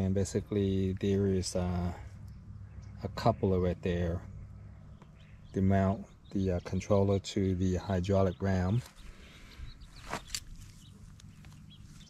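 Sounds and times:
faint outdoor background: 0.0s - 12.0s
handling rustle and click: 10.0s - 12.0s.

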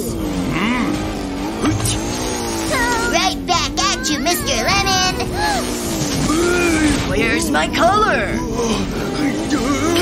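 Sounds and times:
cartoon truck engine running: 0.0s - 10.0s.

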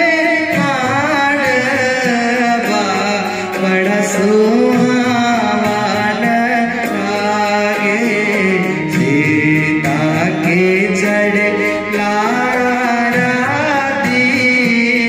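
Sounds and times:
harmonium: 0.0s - 15.0s
man singing: 0.0s - 15.0s.

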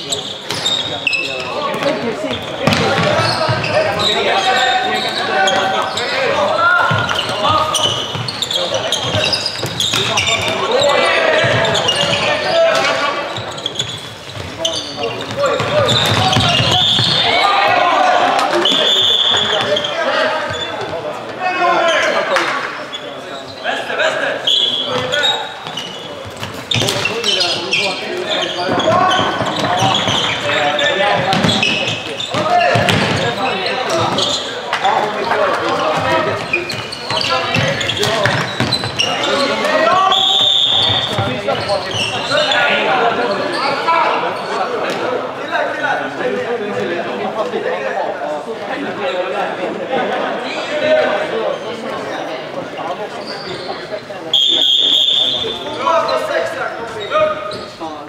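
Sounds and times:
players calling and shouting: 0.0s - 58.0s.

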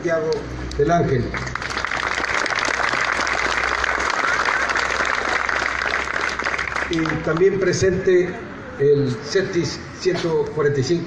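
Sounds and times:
crowd applauding: 1.3s - 7.8s.

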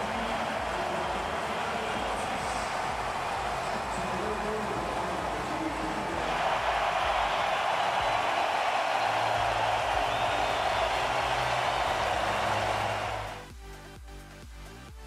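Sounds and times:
arena crowd cheering: 0.0s - 13.4s
background music with steady beat: 0.0s - 15.0s.

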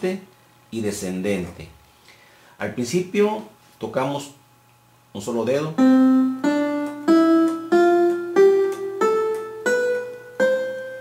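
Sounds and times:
electronic keyboard scale: 5.6s - 11.0s.

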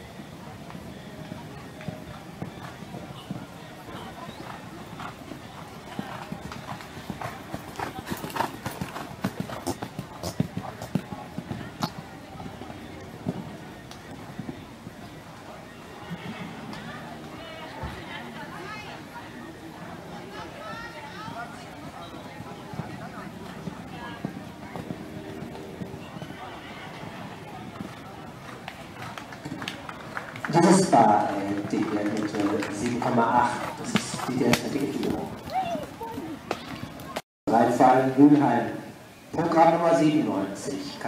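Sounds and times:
spectators chatting: 0.0s - 41.0s
horse hoofbeats on sand: 1.8s - 15.2s, 21.9s - 29.7s.

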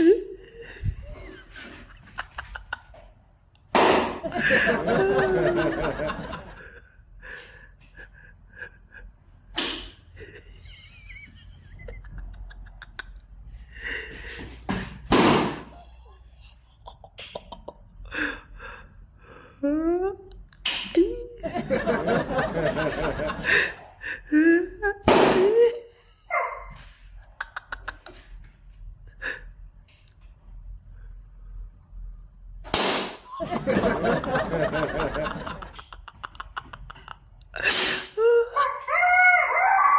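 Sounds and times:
rooster crowing: 38.5s - 39.9s.

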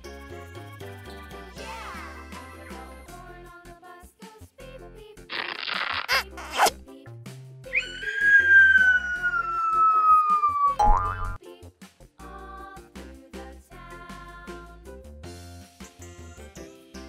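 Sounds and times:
children's background music: 0.0s - 5.4s, 6.2s - 17.0s
falling whistle-like tone: 7.7s - 11.1s.

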